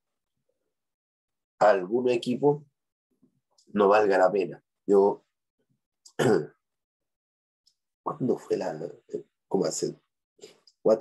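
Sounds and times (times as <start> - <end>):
man clearing throat: 6.1 - 6.5.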